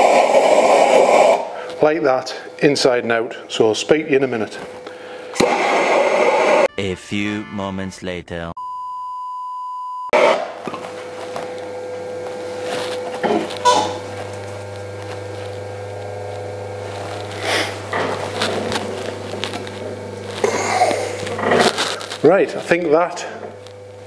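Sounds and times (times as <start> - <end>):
potter's wheel humming: 0.0 - 6.7, 10.2 - 24.0
single-pitch test beep: 8.6 - 10.2
knocks and handling sounds: 10.6 - 15.5.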